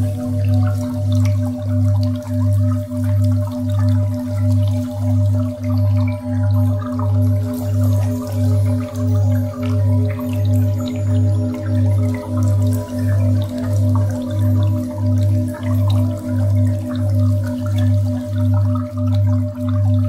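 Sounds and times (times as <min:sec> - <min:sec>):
faint drip-like ticks: 0:00.0 - 0:20.0
meditation drone music: 0:00.0 - 0:20.0.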